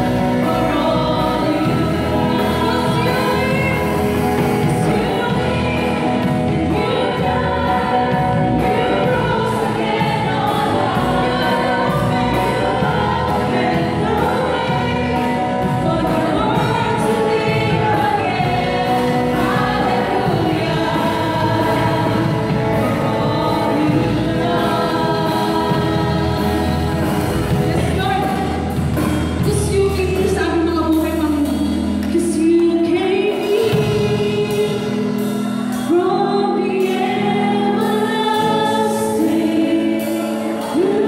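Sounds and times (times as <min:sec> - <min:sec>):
woman singing into a microphone: 0:00.0 - 0:41.0.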